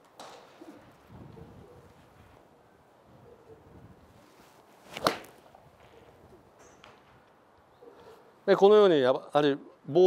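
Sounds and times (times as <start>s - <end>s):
golf club striking ball: 5.0s - 5.4s.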